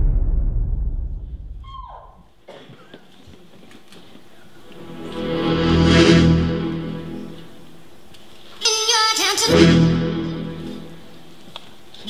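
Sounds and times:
deep boom: 0:00.0 - 0:02.1
falling tone: 0:04.7 - 0:07.8.

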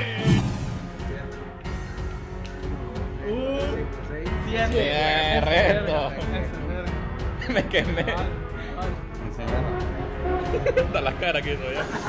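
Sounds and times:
background song: 0:00.0 - 0:12.0.

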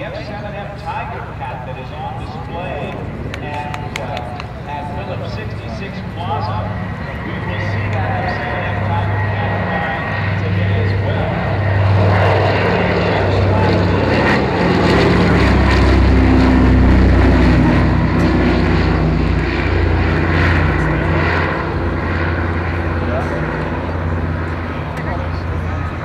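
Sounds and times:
propeller aircraft droning overhead: 0:00.0 - 0:26.0.

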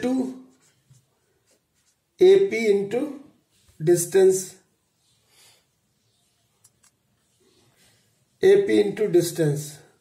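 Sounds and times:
marker writing on whiteboard: 0:00.0 - 0:02.2
man's voice: 0:02.2 - 0:04.6, 0:08.4 - 0:09.9.

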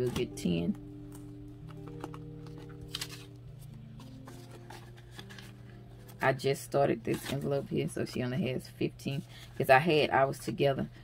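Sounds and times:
soft background music chords: 0:00.0 - 0:11.0
plastic zip pouch rustling: 0:01.1 - 0:06.2.

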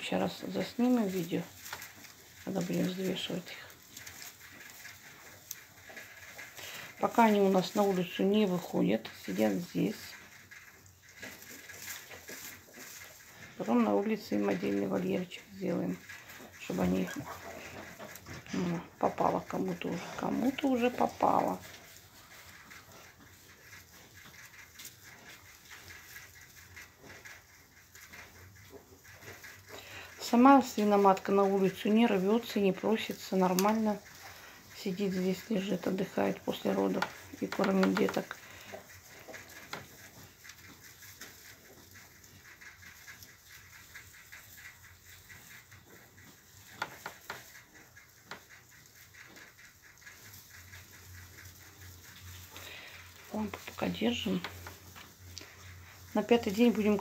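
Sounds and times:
faint rapid ticks: 0:00.0 - 0:57.0
rustling in straw bedding: 0:00.0 - 0:57.0.

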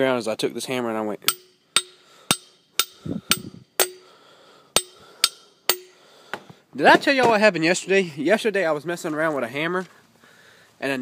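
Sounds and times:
hammer knocking on wooden stake: 0:01.3 - 0:04.0.

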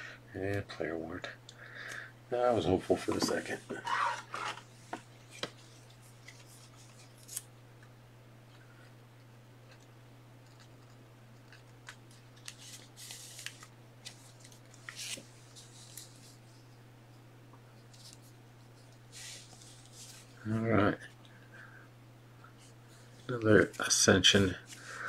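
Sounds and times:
low electrical hum: 0:00.0 - 0:25.0
scratchy sliding and rubbing: 0:03.0 - 0:04.7.

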